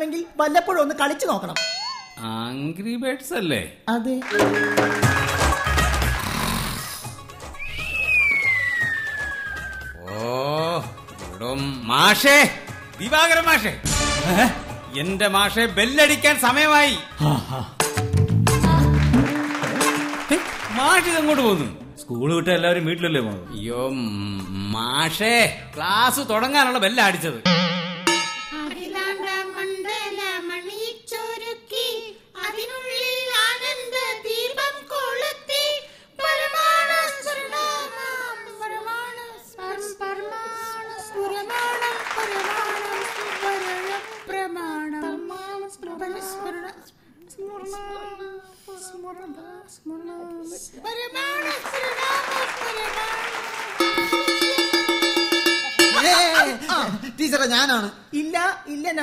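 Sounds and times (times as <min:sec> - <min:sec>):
steel plate bell struck rapidly: 0:01.6 - 0:02.2, 0:27.5 - 0:28.6, 0:53.8 - 0:56.6
studio audience laughter: 0:04.5 - 0:06.3
person singing: 0:17.2 - 0:20.4
child-like voice singing: 0:28.6 - 0:53.3
singer breathing: 0:35.8 - 0:36.2.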